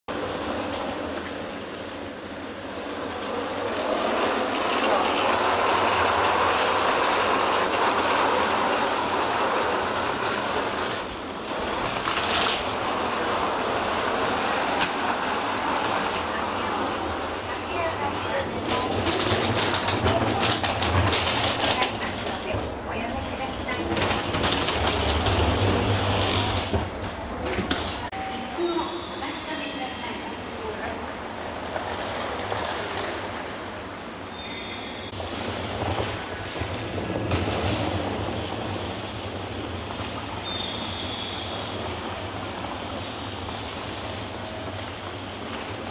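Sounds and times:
train running: 0.1s - 45.9s.

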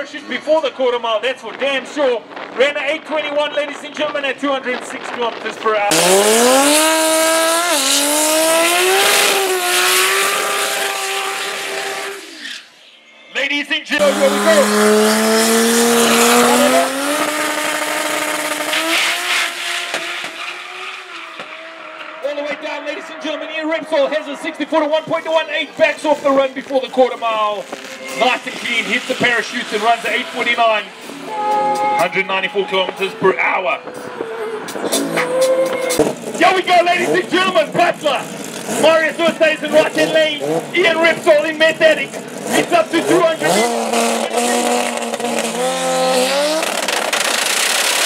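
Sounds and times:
car engine at high revs: 4.8s - 12.5s, 14.0s - 32.0s, 32.7s - 48.0s
sharp engine cracks: 46.6s - 48.0s.

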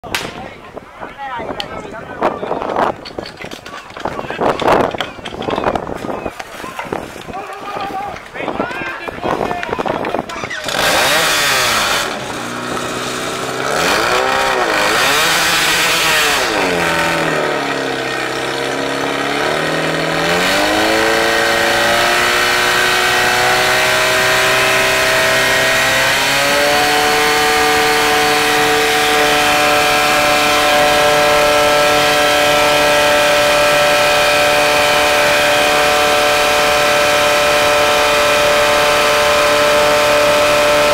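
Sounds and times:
fire pump engine revving: 10.3s - 40.9s.

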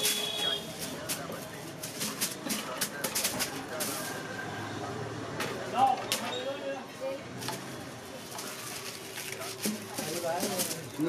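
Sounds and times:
paper kite rustling: 0.0s - 4.3s, 7.4s - 11.0s.

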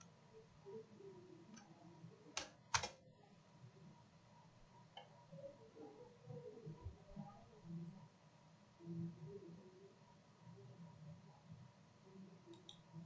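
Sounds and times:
keyboard key clicks: 2.4s - 3.0s.

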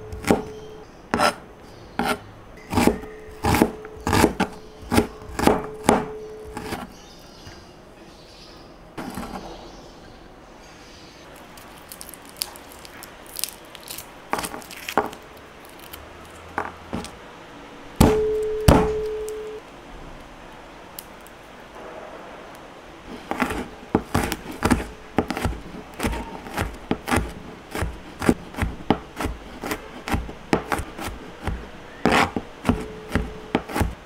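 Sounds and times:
knife chopping onion on board: 0.0s - 1.4s, 2.0s - 6.9s, 18.0s - 19.4s, 23.2s - 34.0s
faint steady hum: 0.0s - 34.0s
knife blade ringing: 2.6s - 4.8s, 18.1s - 19.6s.

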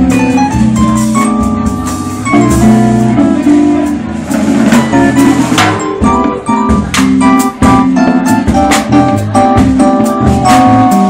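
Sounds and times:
jazz band playing: 0.0s - 11.0s.

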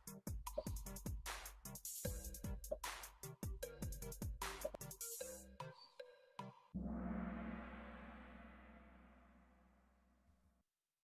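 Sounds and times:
gong-like crash ringing: 6.8s - 10.0s.

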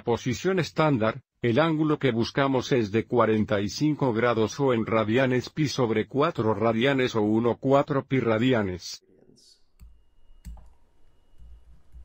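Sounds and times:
stylus clicks: 9.7s - 10.8s.

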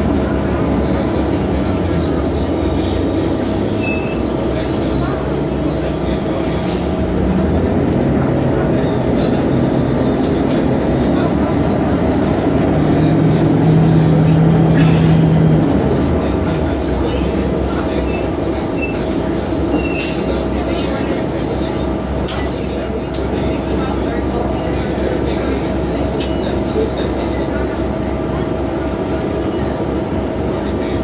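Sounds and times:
bus engine humming: 0.0s - 31.0s.

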